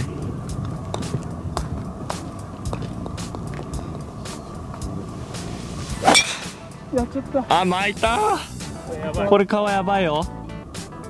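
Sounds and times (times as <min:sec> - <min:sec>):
wind buffeting microphone: 0:00.0 - 0:07.5.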